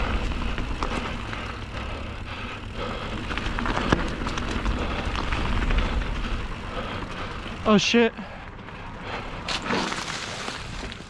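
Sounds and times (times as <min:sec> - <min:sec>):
bike rattling over bump: 0:00.0 - 0:11.0
bike tyres rolling on dirt: 0:00.0 - 0:11.0.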